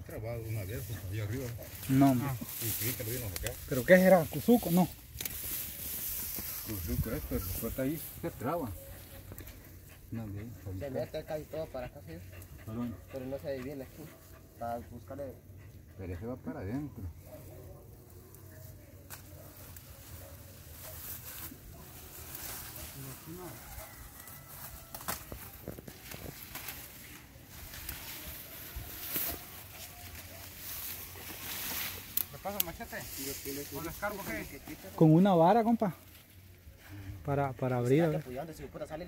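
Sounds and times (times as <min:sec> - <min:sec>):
men murmuring: 0:00.0 - 0:05.1, 0:05.8 - 0:18.0
dry grass rustling and crackling: 0:00.0 - 0:10.2, 0:17.4 - 0:38.8.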